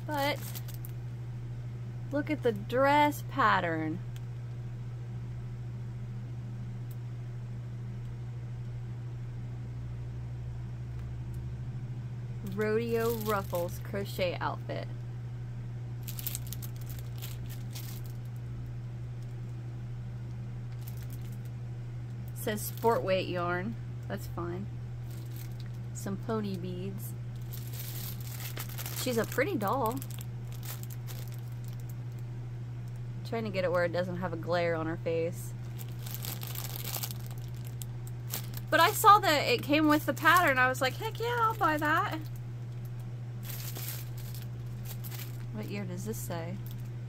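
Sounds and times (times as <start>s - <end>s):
plastic bag crinkling: 0.0s - 1.0s, 12.5s - 13.9s, 16.0s - 18.4s, 20.7s - 21.5s, 22.6s - 23.1s, 25.0s - 25.8s, 27.3s - 32.2s, 35.6s - 42.4s, 43.4s - 45.6s, 46.6s - 46.9s
steady low hum: 0.0s - 47.0s.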